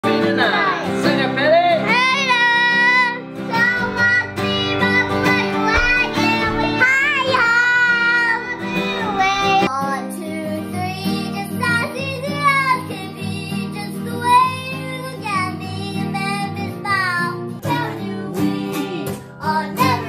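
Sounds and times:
strummed acoustic guitar: 0.0s - 20.0s
child singing: 0.1s - 1.1s, 1.7s - 20.0s.

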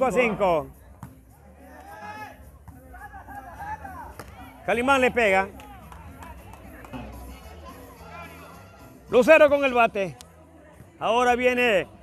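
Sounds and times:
faint voices of players: 0.0s - 12.0s.

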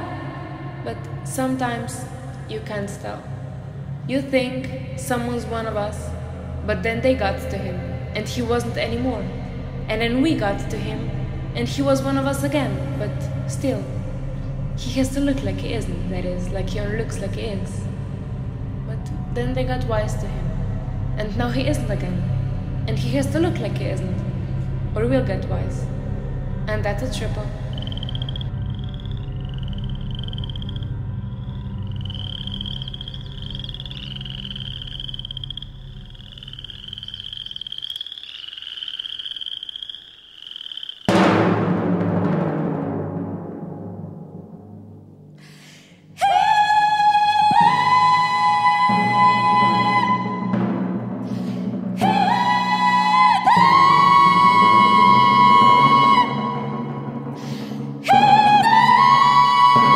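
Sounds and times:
low sustained drone: 0.0s - 37.7s
low hum: 0.0s - 37.9s.

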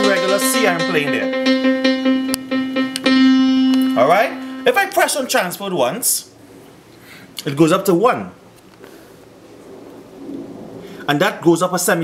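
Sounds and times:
faint hiss and low rumble: 2.1s - 12.0s.

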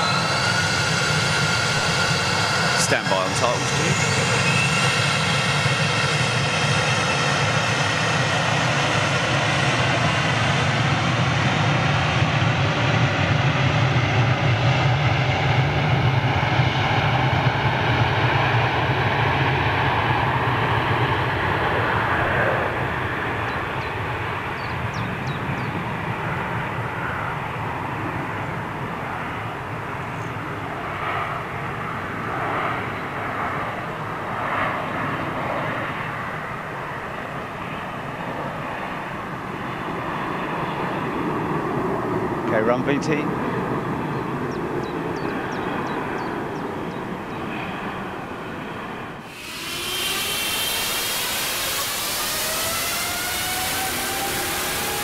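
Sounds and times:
jet engines taking off: 0.0s - 55.0s.

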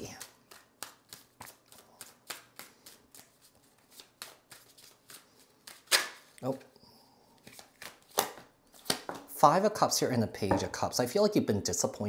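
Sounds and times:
cards shuffled by hand: 0.0s - 6.6s, 7.4s - 9.1s.

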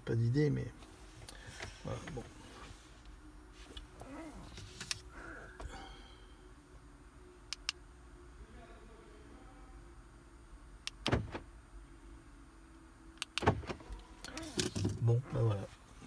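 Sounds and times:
faint low hum: 0.0s - 16.0s
clicks and knocks in car cabin: 11.0s - 11.4s, 13.2s - 15.1s.

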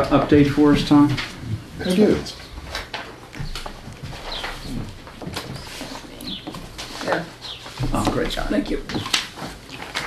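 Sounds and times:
papers rustling: 2.6s - 10.0s.

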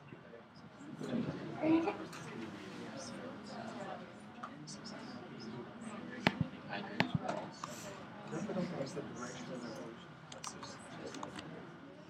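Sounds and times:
murmur of students talking: 0.0s - 12.0s.

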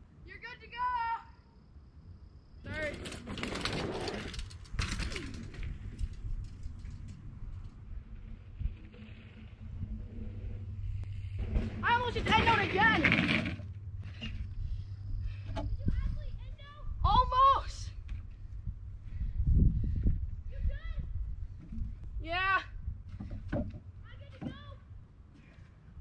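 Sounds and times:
outdoor noise: 0.0s - 26.0s
voices: 11.7s - 13.6s, 15.6s - 18.0s, 24.0s - 24.8s.

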